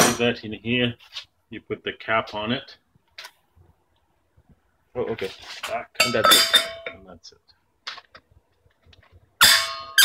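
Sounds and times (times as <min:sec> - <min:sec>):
metal cap clanging on gas cylinder: 0:06.0 - 0:07.0.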